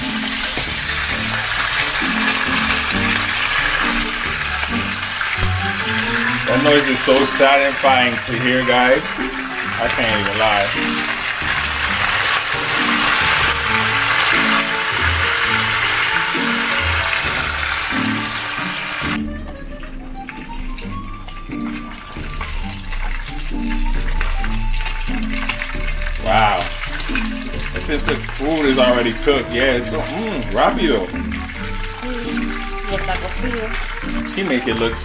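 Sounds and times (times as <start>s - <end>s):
background music with bass line: 0.0s - 7.5s
chicken frying in hot oil: 0.0s - 35.0s.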